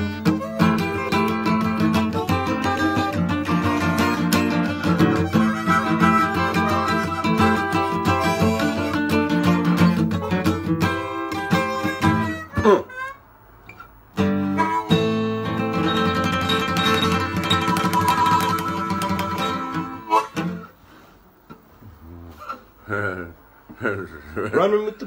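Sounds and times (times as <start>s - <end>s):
acoustic slide guitar blues: 0.0s - 13.2s, 14.2s - 21.1s
harmonica: 0.0s - 21.1s.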